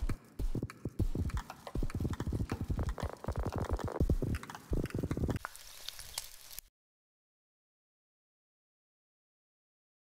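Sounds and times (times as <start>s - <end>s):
rhythmic clicks and knocks: 0.0s - 5.5s.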